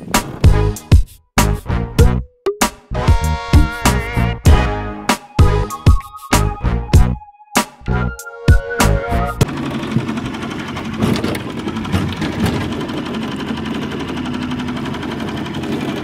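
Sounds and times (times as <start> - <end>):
music with a beat: 0.2 - 9.4
small boat motor running: 9.4 - 16.0.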